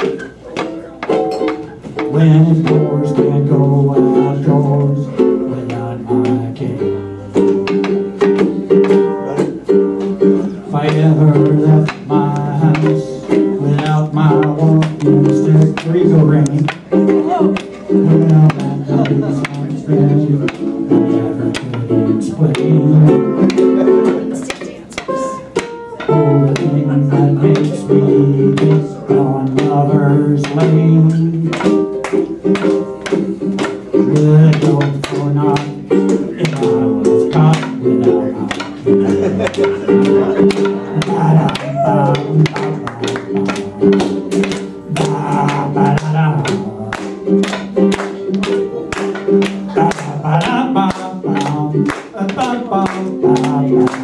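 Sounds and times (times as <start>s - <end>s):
drum beat: 0.0s - 54.0s
guitar chords: 0.0s - 54.0s
person singing: 0.0s - 54.0s
small stringed instrument strummed: 0.0s - 54.0s.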